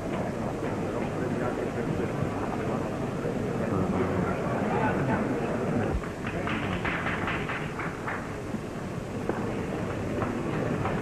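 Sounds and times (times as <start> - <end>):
murmur of a crowd: 0.0 - 11.0
noisy old film recording hiss: 0.0 - 11.0.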